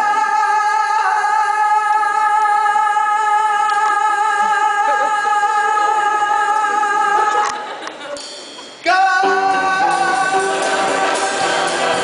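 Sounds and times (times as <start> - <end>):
backing music: 8.1 - 12.0
person singing long held note: 9.0 - 12.0.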